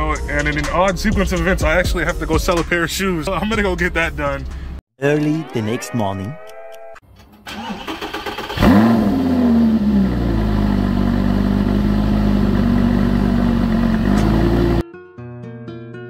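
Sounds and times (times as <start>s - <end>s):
engine revving and idling: 8.0s - 14.8s.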